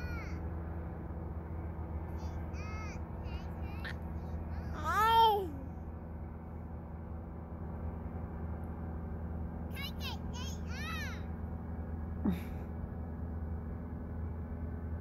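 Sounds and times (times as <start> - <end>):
young child babbling: 0.0 - 0.4, 2.2 - 4.0, 4.6 - 5.7
paramotor engine drone: 0.0 - 15.0.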